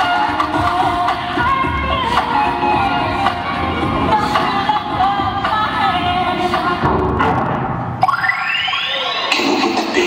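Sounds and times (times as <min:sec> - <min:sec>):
electronic dance music: 0:00.0 - 0:10.0
synthesized swooping effects: 0:07.8 - 0:10.0.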